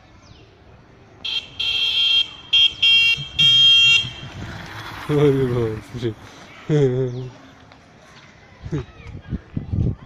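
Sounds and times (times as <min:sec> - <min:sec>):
electronic horn buzzing beep: 0:01.3 - 0:04.2.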